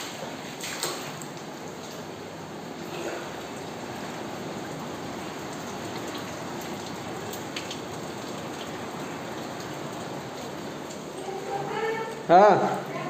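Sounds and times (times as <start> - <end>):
heavy rain falling: 1.0 - 13.0.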